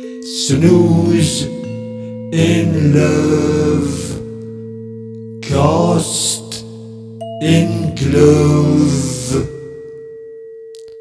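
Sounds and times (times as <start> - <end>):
chanting voice: 0.0 - 4.6, 5.4 - 10.0
held pure tone: 0.0 - 11.0.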